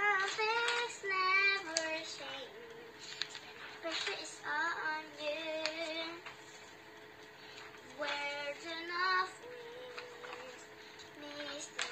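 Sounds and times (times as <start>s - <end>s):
book pages rustling: 0.0s - 2.4s, 3.0s - 11.9s
girl singing wordless tune: 0.0s - 6.4s, 7.4s - 11.9s.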